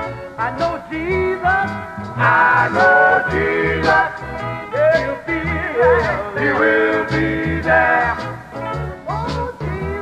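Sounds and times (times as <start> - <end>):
low bass notes: 0.0 - 10.0
male vocal group singing: 0.4 - 8.6, 9.3 - 10.0.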